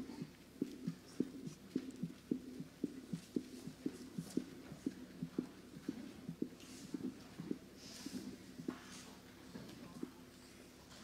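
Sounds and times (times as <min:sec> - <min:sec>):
muffled rhythmic thumping: 0:00.0 - 0:08.9, 0:09.8 - 0:10.2.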